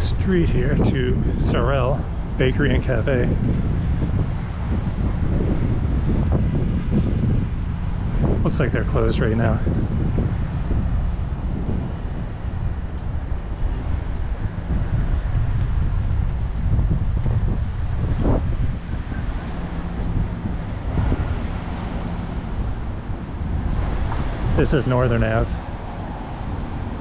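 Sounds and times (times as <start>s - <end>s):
street traffic passing: 0.0s - 27.0s
wind buffeting microphone: 0.0s - 27.0s.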